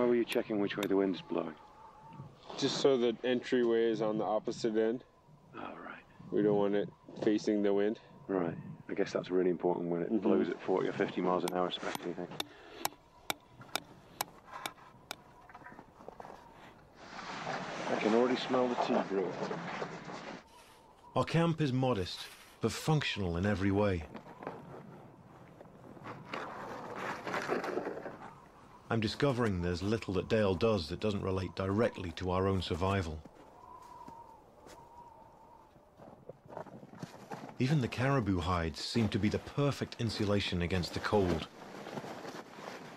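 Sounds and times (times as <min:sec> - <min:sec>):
canvas tent cloth rustling: 0:41.2 - 0:42.9.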